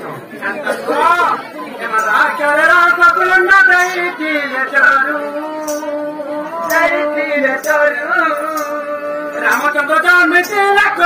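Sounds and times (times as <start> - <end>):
chatter: 0.0 - 11.0.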